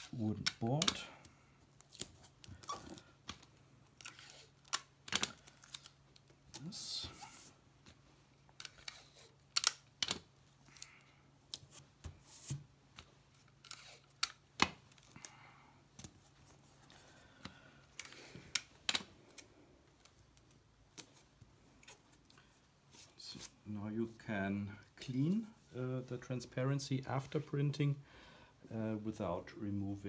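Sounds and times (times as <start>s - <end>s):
adhesive tape torn from dispenser: 13.6s - 14.4s.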